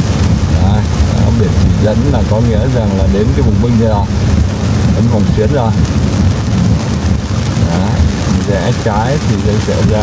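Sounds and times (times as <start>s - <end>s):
engine and tyres rumble: 0.0s - 10.0s
rain on car roof: 0.0s - 10.0s.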